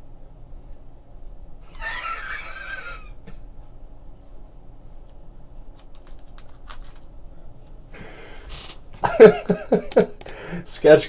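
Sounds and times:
man laughing: 1.6s - 3.4s, 8.0s - 10.2s.

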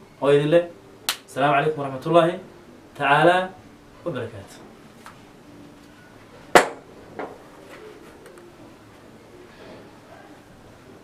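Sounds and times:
sharp knock: 6.6s - 6.8s.

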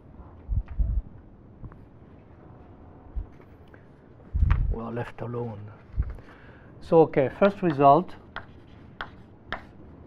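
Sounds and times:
chalk tapping on blackboard: 7.4s - 9.8s
chalk scratching: 7.5s - 9.9s.

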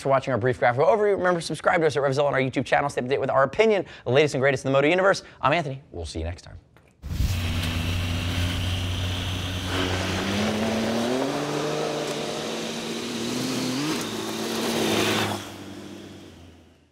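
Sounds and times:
motorcycle engine revving: 7.1s - 16.9s.

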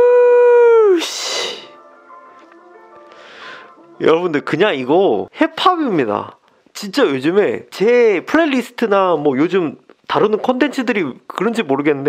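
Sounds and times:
man howling: 0.0s - 4.6s
faint music: 0.7s - 12.0s.

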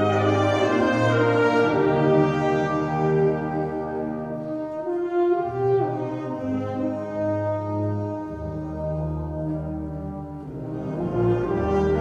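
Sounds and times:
concert band playing slow passage: 0.0s - 12.0s.

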